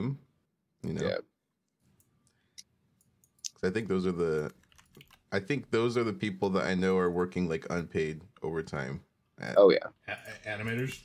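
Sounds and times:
computer keys clicking: 4.4s - 5.3s.

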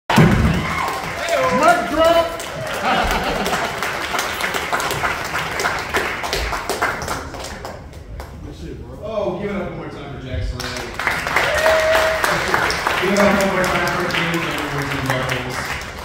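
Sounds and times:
crowd whooping and shouting: 0.1s - 3.2s, 11.3s - 12.7s
audience applauding: 0.1s - 8.1s, 10.6s - 16.0s.

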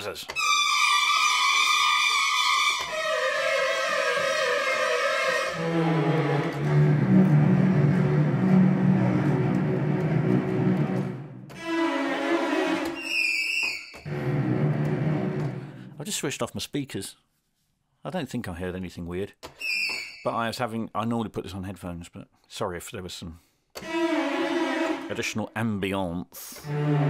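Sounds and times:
dissonant orchestral strings: 0.0s - 16.0s, 23.8s - 25.6s, 26.6s - 27.0s.

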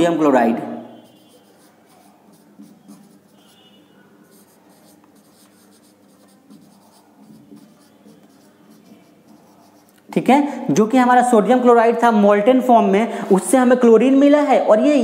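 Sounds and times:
marker scratching on whiteboard: 0.9s - 10.1s.

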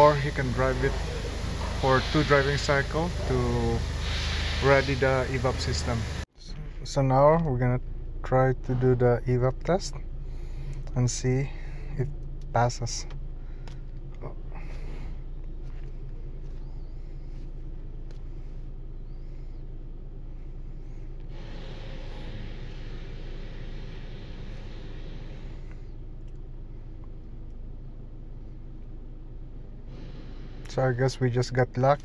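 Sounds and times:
hiss: 0.0s - 6.2s, 21.2s - 26.0s, 29.9s - 30.9s
car engine idling: 0.0s - 32.0s.

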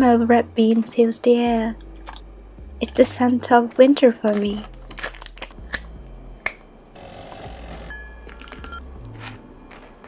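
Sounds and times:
plastic wrap crinkling: 4.3s - 5.7s
plastic wrap snapping: 4.3s - 6.6s.

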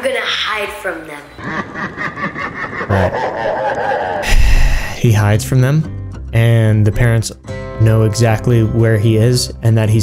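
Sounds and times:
boy snickering laugh: 1.4s - 4.9s.

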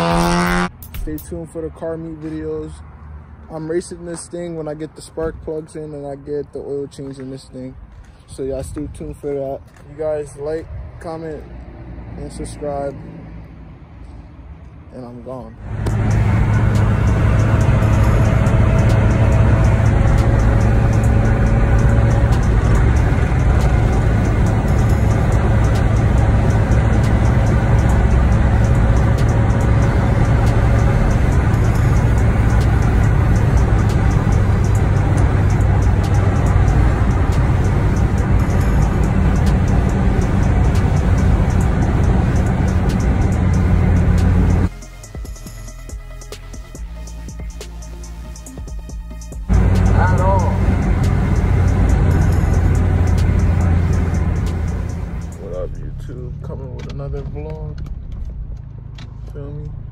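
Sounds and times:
engine and road drone: 0.0s - 59.9s
music playing in car: 15.6s - 55.7s.

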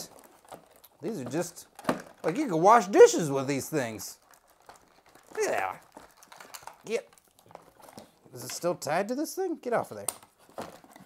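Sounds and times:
rubber glove rustling and clicking: 0.0s - 9.0s.

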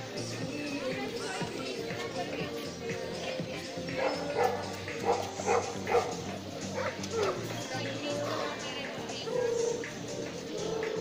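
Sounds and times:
background music: 0.0s - 11.0s
dog barking: 4.0s - 6.2s, 6.8s - 7.3s.

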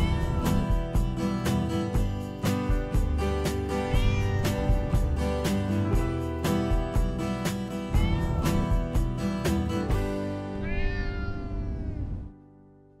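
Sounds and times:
music with steady beat: 0.0s - 10.4s
cat meowing: 3.8s - 5.2s, 7.9s - 9.0s, 10.5s - 12.3s.

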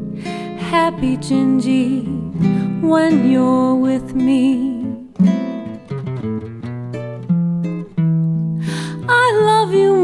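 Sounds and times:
acoustic guitar plucked notes: 0.0s - 10.0s
person singing: 0.4s - 5.1s, 8.9s - 10.0s.

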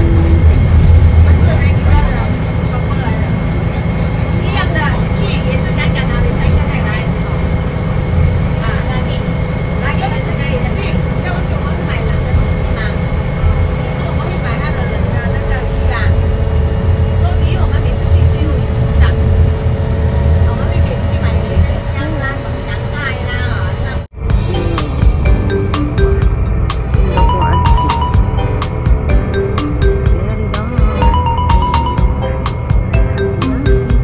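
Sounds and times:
passengers talking faintly: 0.0s - 7.4s
bus engine and road rumble: 0.0s - 34.0s.

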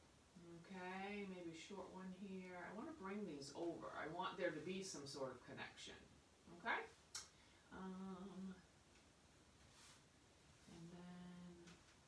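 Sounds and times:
woman humming: 7.7s - 8.7s, 10.6s - 11.8s.

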